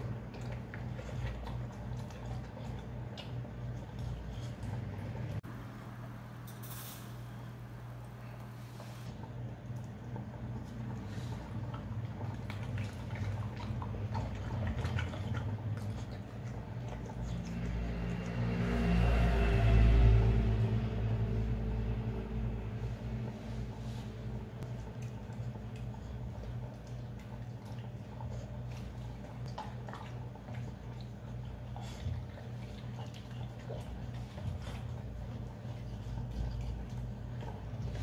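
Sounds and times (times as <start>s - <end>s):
dog licking and chewing: 0.0s - 5.3s, 9.6s - 18.6s, 24.6s - 38.0s
steady low hum: 0.0s - 38.0s
low rumble: 15.8s - 26.9s.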